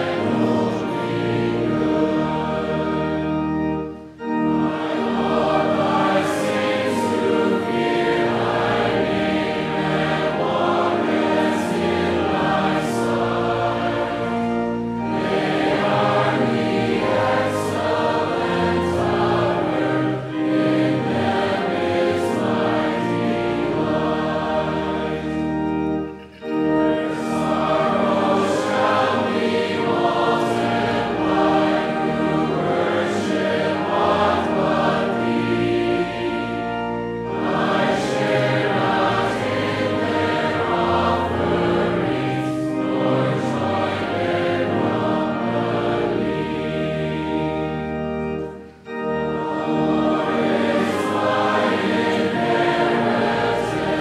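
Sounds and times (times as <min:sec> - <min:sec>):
congregation singing a hymn: 0:00.0 - 0:54.0
organ accompaniment: 0:00.0 - 0:54.0.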